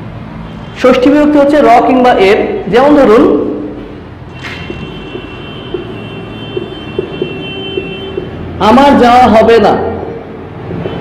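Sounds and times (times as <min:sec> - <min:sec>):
marker squeaking on whiteboard: 0:04.4 - 0:08.4.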